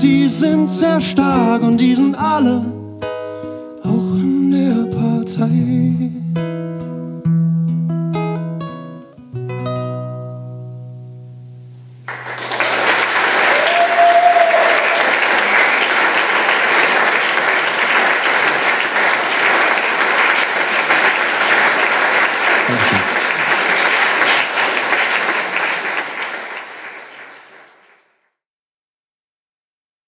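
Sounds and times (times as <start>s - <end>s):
crowd whooping: 12.1s - 17.6s, 20.8s - 25.2s
audience applauding: 12.1s - 28.2s.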